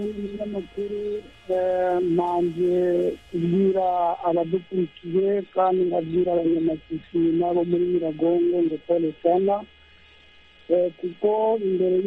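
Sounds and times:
voice over a telephone line: 0:00.0 - 0:09.7, 0:10.7 - 0:12.0
low hum on telephone line: 0:00.0 - 0:12.0.

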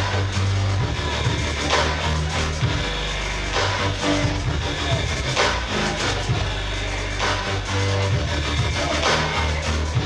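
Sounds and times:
dance music with heavy bass: 0:00.0 - 0:10.0.

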